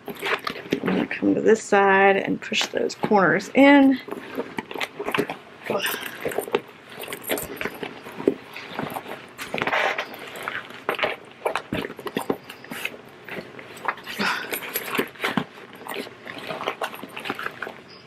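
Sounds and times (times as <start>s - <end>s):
stiff fabric bag rustling: 0.0s - 1.3s, 2.9s - 18.0s
metal zipper pulls jingling: 0.0s - 1.4s, 3.5s - 18.0s.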